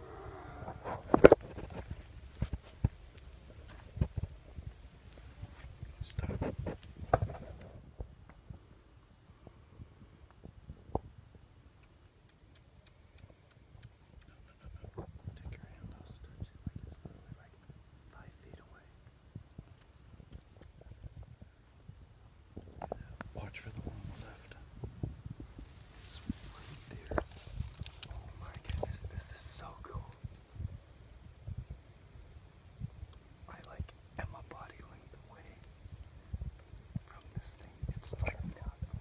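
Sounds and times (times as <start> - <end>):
faint clicks: 11.8 - 14.7, 26.3 - 29.2
person whispering: 14.2 - 19.0, 22.9 - 24.6, 26.0 - 27.5, 28.1 - 30.2, 33.5 - 35.7, 37.1 - 38.9.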